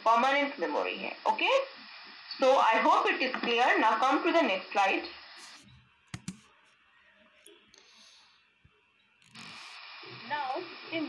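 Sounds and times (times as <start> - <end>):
laptop clicks: 6.1 - 6.5.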